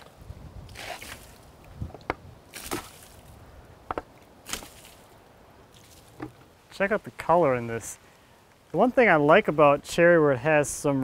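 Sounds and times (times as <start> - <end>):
water splashing onto wood: 0.7 - 6.6.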